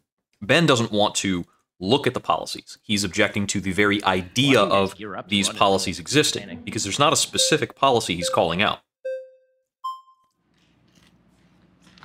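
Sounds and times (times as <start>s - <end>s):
short electronic beeps: 7.3s - 10.4s.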